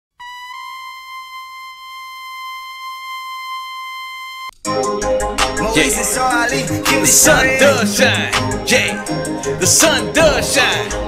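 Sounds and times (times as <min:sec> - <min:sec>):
high-pitched electronic tone: 0:00.2 - 0:04.6.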